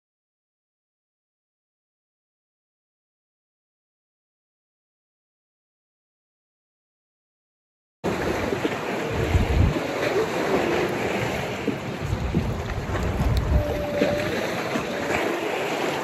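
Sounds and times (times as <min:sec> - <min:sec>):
open water wash: 0:08.1 - 0:16.0
wind buffeting microphone: 0:08.1 - 0:16.0.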